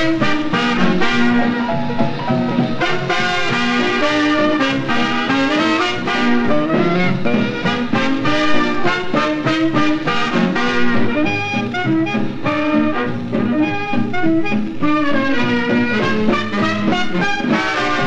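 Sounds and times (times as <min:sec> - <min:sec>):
swing dance orchestra on old record: 0:00.0 - 0:18.0.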